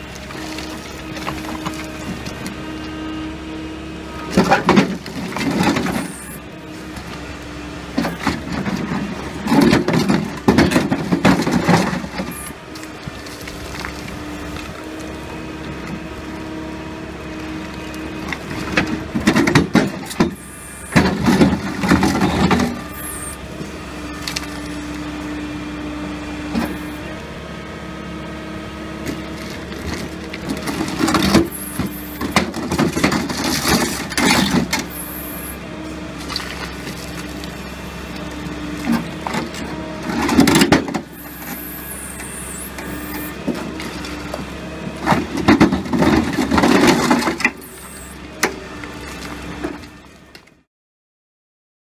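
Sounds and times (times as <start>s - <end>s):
excavator engine running: 0.0s - 50.7s
concrete cracking and grinding: 0.1s - 2.5s.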